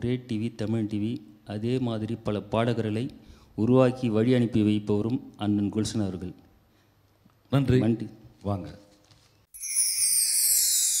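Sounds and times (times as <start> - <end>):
high shimmering falling tone: 9.6 - 11.0.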